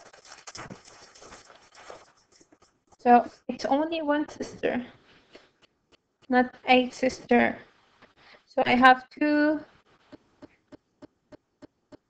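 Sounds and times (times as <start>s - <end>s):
handling clicks and rustling: 0.0s - 3.1s.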